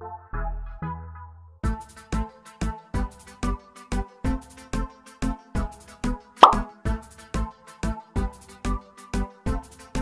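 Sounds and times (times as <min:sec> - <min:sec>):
pop sound effect: 0:06.4 - 0:06.7.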